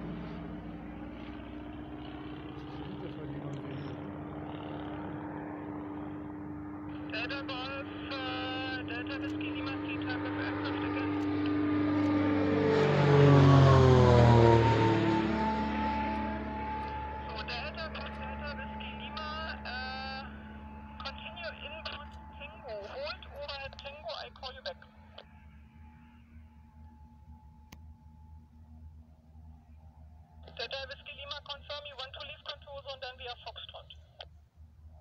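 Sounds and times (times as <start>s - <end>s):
propeller aircraft passing overhead: 0.0s - 35.0s.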